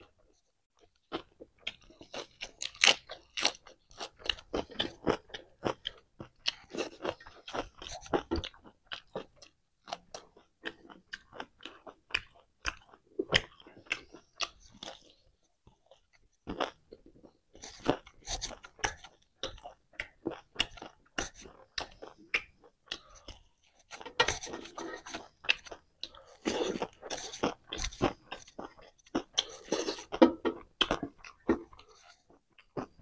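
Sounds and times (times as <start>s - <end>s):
crunchy chewing of lettuce: 1.2s - 9.3s, 17.5s - 33.0s.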